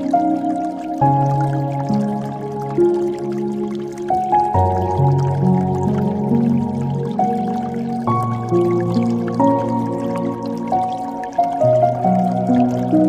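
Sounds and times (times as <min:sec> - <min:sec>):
slow gentle piano music: 0:00.0 - 0:13.0
water dripping and trickling: 0:00.0 - 0:13.0.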